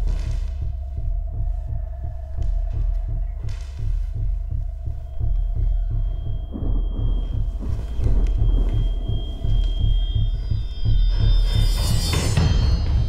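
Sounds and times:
fast low heartbeat pulse: 0:00.0 - 0:13.0
steady held tone: 0:04.1 - 0:13.0.

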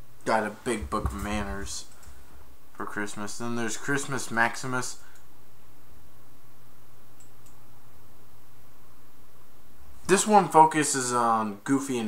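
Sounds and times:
steady hiss with low hum: 0:00.0 - 0:12.0.

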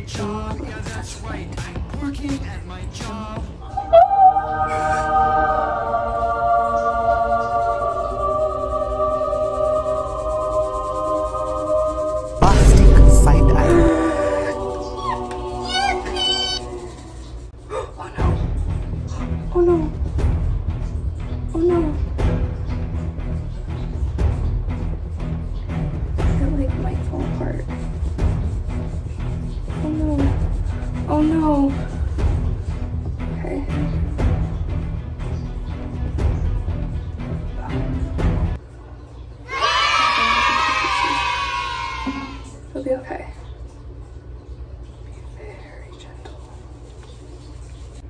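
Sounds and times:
children cheering: 0:39.5 - 0:42.6.

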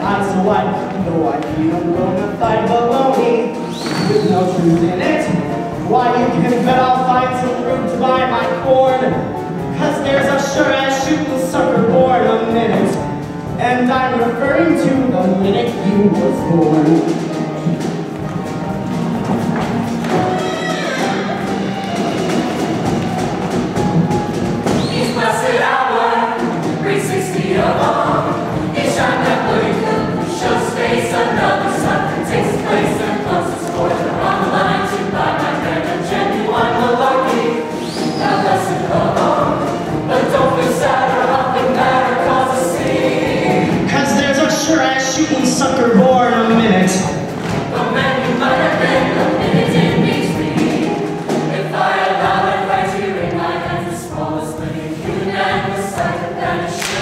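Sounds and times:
choir singing: 0:00.0 - 0:13.3, 0:14.1 - 0:57.0
instrumental accompaniment: 0:00.0 - 0:57.0
percussive hits: 0:56.8 - 0:57.0.

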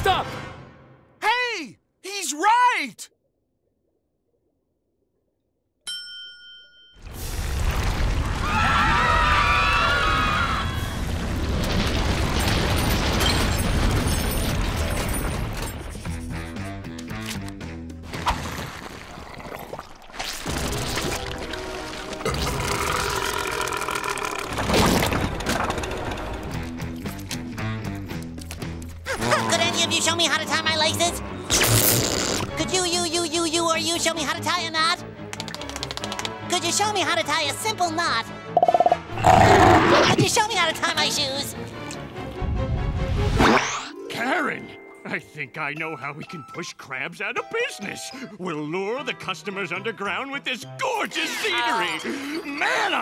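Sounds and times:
cartoon crowd screaming: 0:08.4 - 0:11.2
dramatic music: 0:20.6 - 0:33.1
soft background music: 0:43.9 - 0:53.0.

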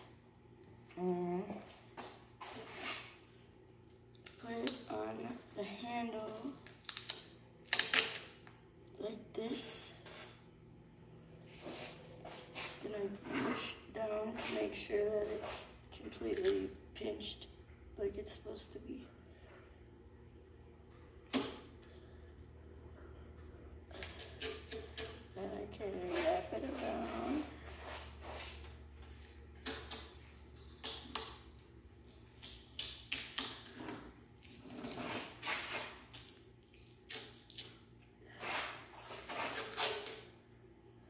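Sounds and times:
duct tape ripping off roll: 0:06.7 - 0:08.3, 0:38.4 - 0:40.2.

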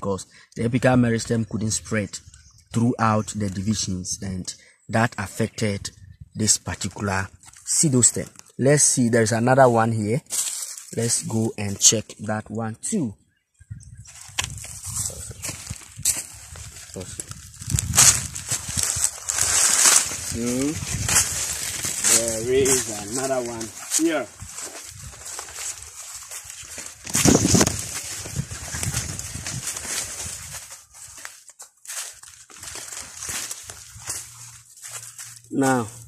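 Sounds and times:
footsteps on soil and leaves: 0:09.5 - 0:12.0, 0:14.0 - 0:36.0.

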